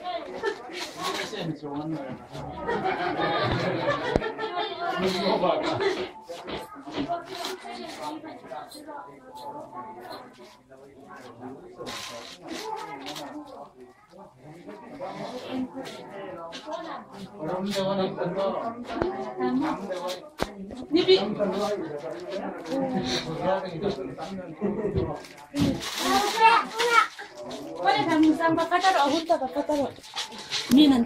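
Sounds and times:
wrapping paper crinkling: 25.2 - 30.7
child making wordless sounds: 26.0 - 27.2.

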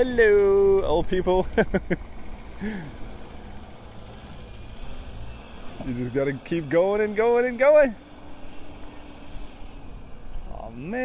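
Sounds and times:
distant minibus engine under load: 0.0 - 11.0.

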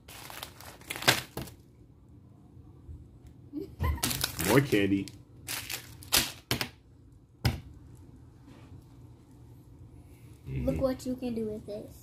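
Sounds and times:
plastic candy wrapper crinkling: 0.0 - 1.7, 4.0 - 6.7.

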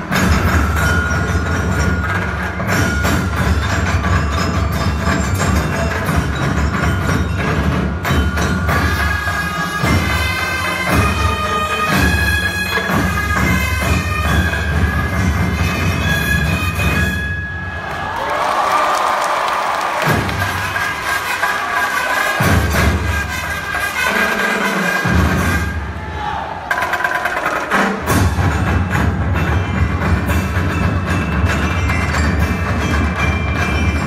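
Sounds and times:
loud dance music with drumbeat: 19.9 - 34.0.

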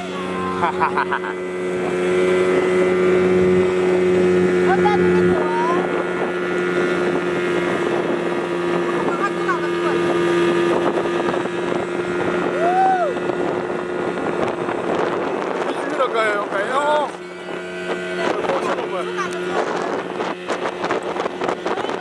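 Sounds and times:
speedboat engine running: 0.0 - 22.0
water rushing: 0.0 - 22.0
wind: 0.0 - 22.0.

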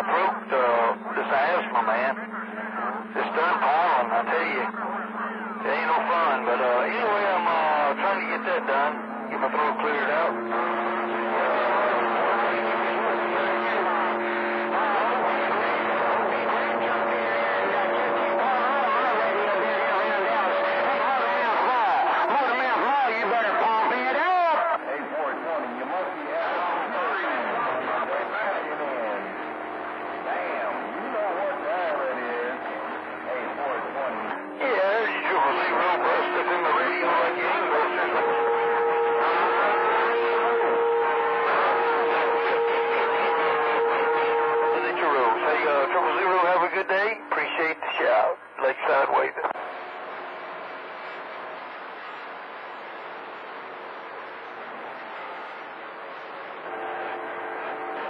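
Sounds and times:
garbled radio voices: 0.0 - 53.6.

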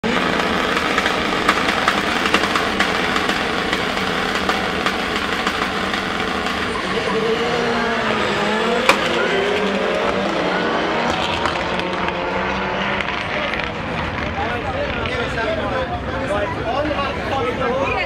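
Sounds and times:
race car engines accelerating: 0.0 - 18.0.

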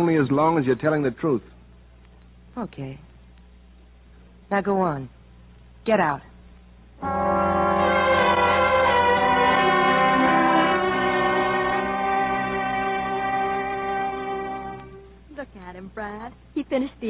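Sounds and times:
woman speaking: 2.6 - 3.1, 4.5 - 5.1, 5.9 - 6.3, 15.3 - 17.0
orchestral held string chords: 7.0 - 15.3.

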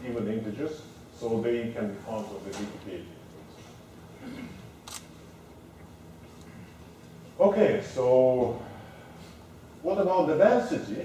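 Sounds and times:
faint murmur: 1.9 - 9.9.

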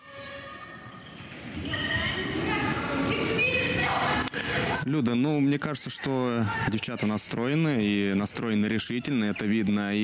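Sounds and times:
sports hall din: 0.0 - 10.0
shoe squeaks: 0.1 - 2.6.

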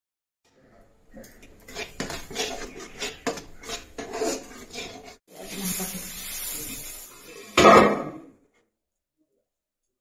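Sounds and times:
metal spatula scraping iron pan: 1.2 - 8.2.

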